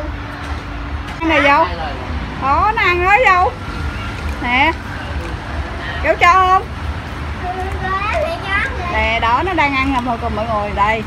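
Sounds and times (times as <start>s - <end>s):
steady low rumble: 0.0s - 11.0s
young child talking: 7.4s - 9.2s.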